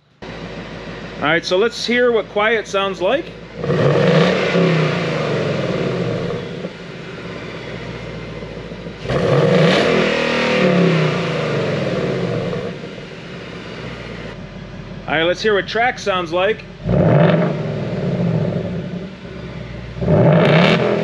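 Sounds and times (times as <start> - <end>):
car engine revving: 0.0 - 21.0.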